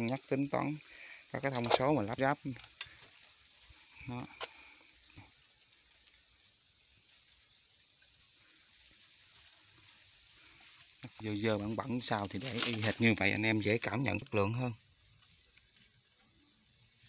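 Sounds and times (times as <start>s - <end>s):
background hiss: 0.0s - 17.0s.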